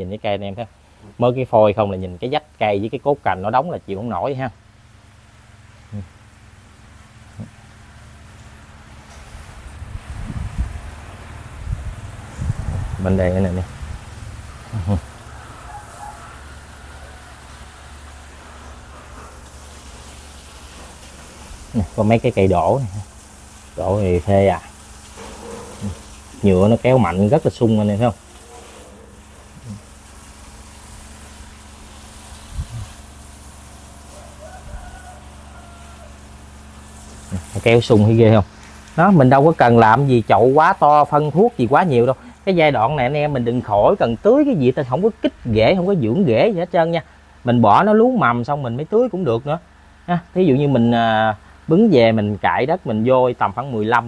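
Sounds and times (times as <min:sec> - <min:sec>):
low buzzing hum: 0:00.6 - 0:54.0
wind buffeting microphone: 0:09.6 - 0:15.0, 0:32.5 - 0:32.9.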